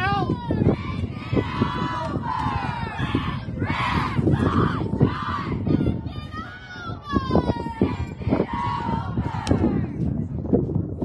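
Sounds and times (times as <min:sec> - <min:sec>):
players shouting: 0:00.0 - 0:09.6.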